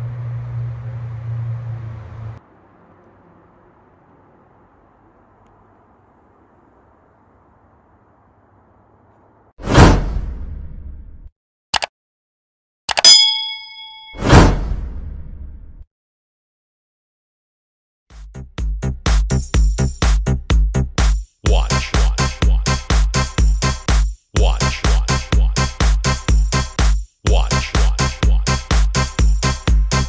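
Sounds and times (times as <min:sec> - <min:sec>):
low outdoor hum: 0:00.0 - 0:09.6
whoosh and boom hit: 0:09.6 - 0:11.1, 0:14.2 - 0:15.7
bright bell-like ding: 0:13.0 - 0:14.3.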